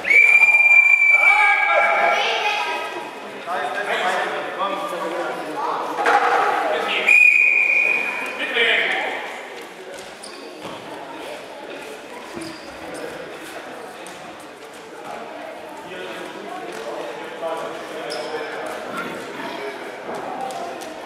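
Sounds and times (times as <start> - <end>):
referee's whistle: 0.0 - 1.4, 7.0 - 8.4
voices echoing in a hall: 0.0 - 21.0.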